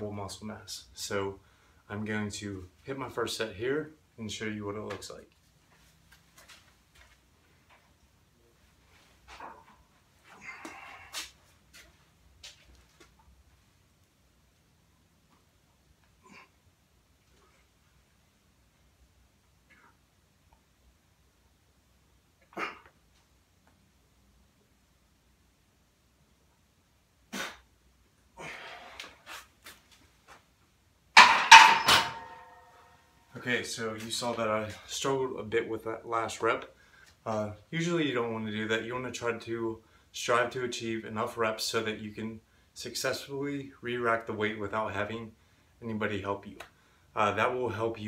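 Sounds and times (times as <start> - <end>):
man exhaling with effort: 28.4 - 29.1
barbell clicks: 31.2 - 32.7
loud metallic clanks: 31.2 - 32.8.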